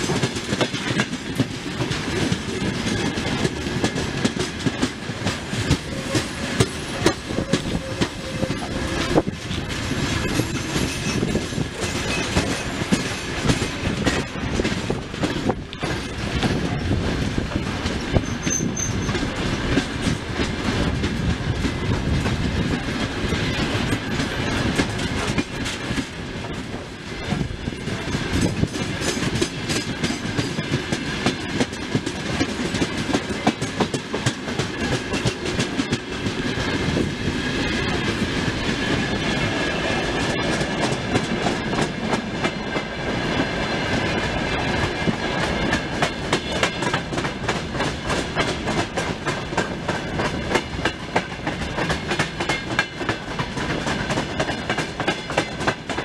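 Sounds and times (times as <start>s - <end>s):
train low rumble: 0.0s - 56.0s
train wheels clickety-clack: 0.0s - 56.0s.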